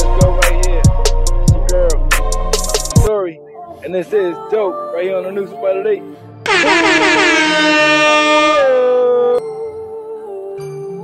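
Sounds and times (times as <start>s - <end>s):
air horn blast: 6.5s - 9.4s.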